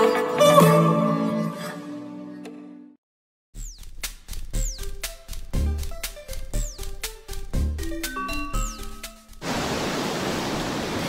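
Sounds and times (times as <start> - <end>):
music note: 8.0 - 9.4.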